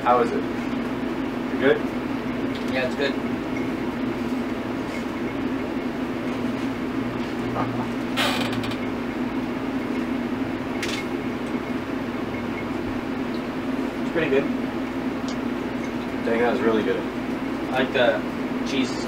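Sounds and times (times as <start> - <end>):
air conditioner humming: 0.0 - 19.0.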